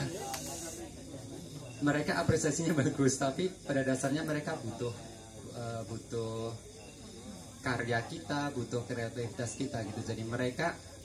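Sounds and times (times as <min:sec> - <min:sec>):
breathy hiss: 0:00.0 - 0:01.3
room noise: 0:00.0 - 0:11.0.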